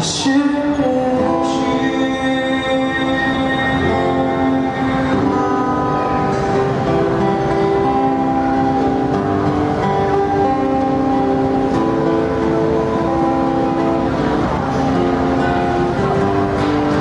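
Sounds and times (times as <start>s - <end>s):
acoustic-electric guitar chords: 0.0s - 17.0s.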